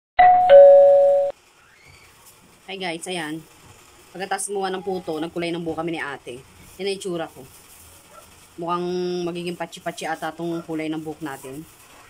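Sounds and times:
two-note ding-dong chime: 0.2s - 1.3s.

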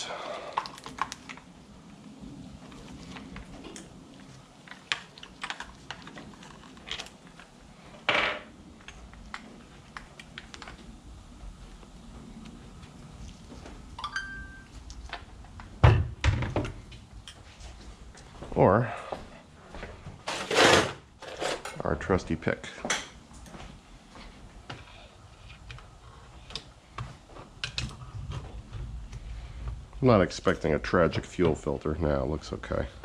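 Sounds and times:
scrape: 20.3s - 21.6s.

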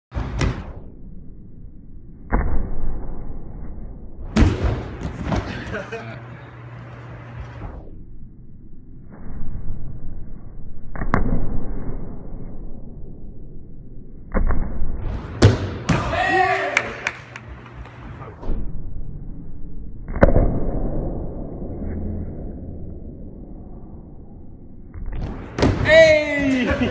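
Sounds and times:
low rumble: 18.1s - 25.4s.

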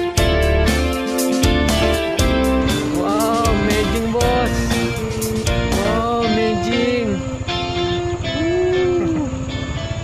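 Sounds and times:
drum beat: 0.0s - 6.0s
guitar music: 0.0s - 10.0s.

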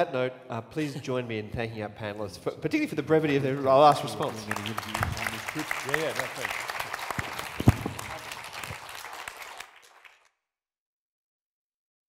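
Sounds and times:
audience applauding: 3.4s - 10.3s
microphone bump: 7.6s - 8.2s.

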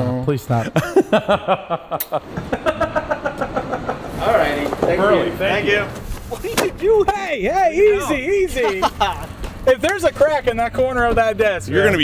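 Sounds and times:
men laughing hard: 0.6s - 4.5s, 8.0s - 9.4s.

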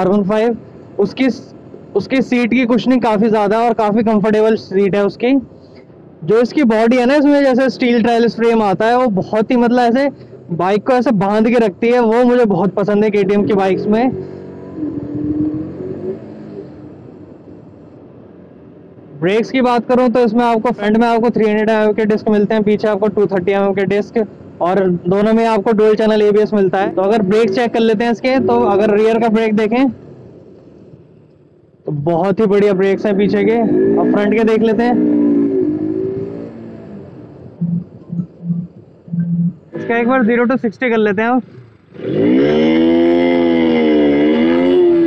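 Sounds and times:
road noise: 0.0s - 45.0s
short low hums: 37.5s - 39.9s.

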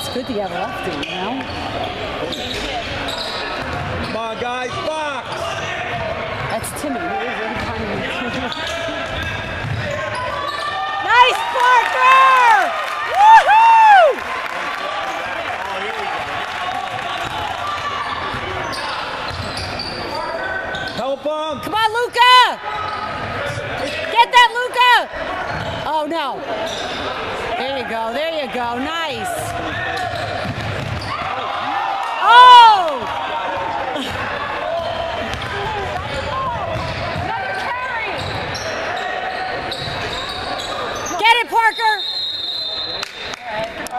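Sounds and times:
murmur of gym: 0.0s - 43.9s
spectators chatting: 0.0s - 43.9s
shoes squeaking on hardwood floor: 0.1s - 4.2s, 18.0s - 21.0s, 37.8s - 41.5s
basketball dribbling: 35.2s - 37.4s.

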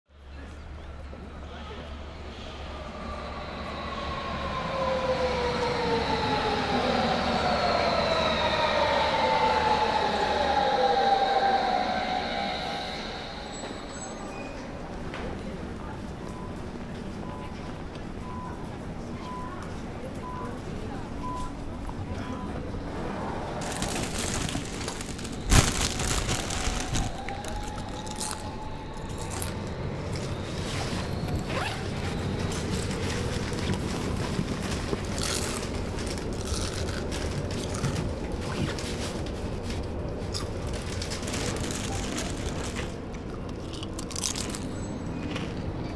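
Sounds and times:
train carriage rumble: 0.2s - 45.9s.

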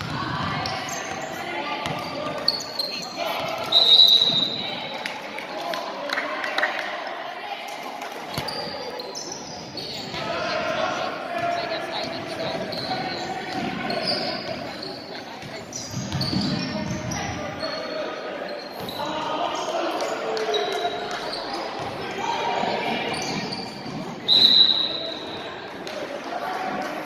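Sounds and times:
people talking and calling out: 0.0s - 27.0s.

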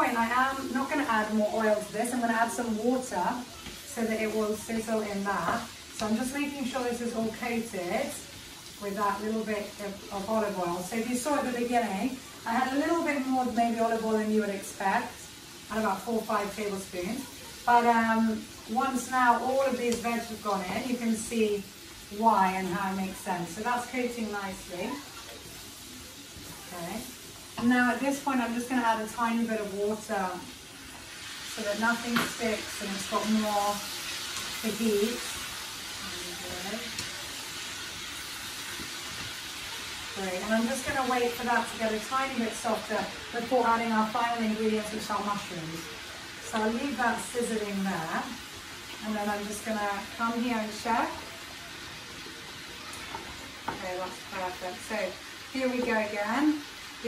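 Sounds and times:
vegetables sizzling in a pan: 0.0s - 57.0s.

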